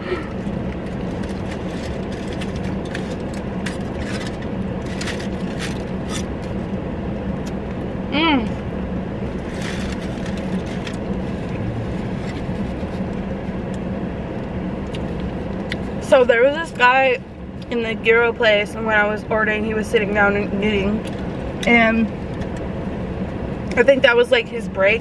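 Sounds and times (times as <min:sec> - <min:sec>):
car interior hum: 0:00.0 - 0:25.0.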